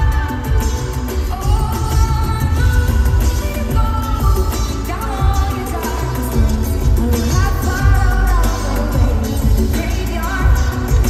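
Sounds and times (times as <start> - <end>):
live pop band with heavy bass: 0.0 - 11.0
woman singing into microphone: 0.0 - 11.0.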